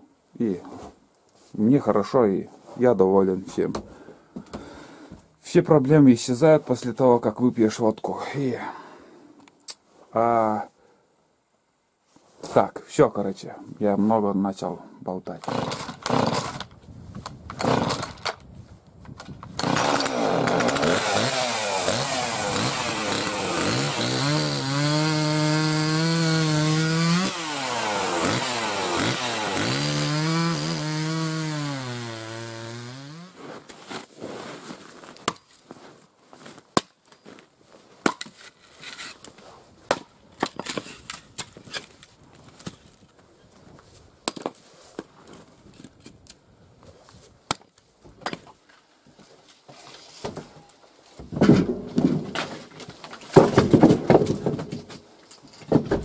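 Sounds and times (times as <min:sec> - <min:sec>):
chainsaw cutting log: 0:15.4 - 0:16.7, 0:17.5 - 0:18.3, 0:19.5 - 0:33.6.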